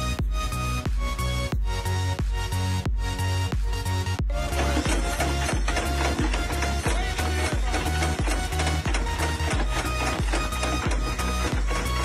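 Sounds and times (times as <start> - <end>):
background music with beat and bass: 0.0 - 12.0.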